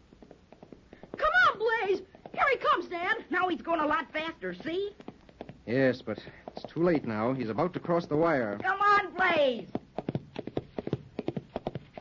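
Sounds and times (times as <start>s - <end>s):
horse galloping hoofbeats: 0.0s - 12.0s.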